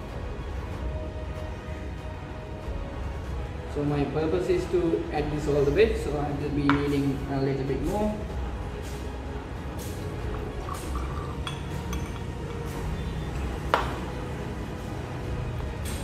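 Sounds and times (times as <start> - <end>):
glassware clinking: 10.3 - 12.8.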